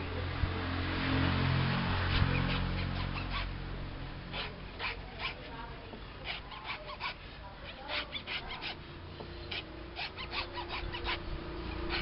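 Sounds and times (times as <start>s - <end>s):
knife scraping fruit husk: 2.0s - 3.6s, 4.2s - 12.0s.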